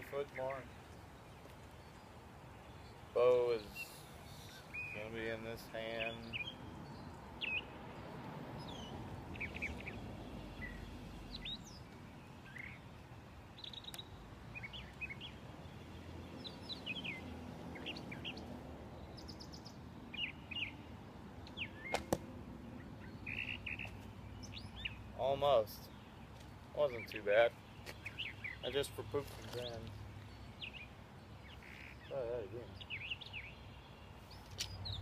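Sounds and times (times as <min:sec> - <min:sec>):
small birds chirping: 0:00.0 - 0:35.0
bow shot crack: 0:21.9 - 0:22.3.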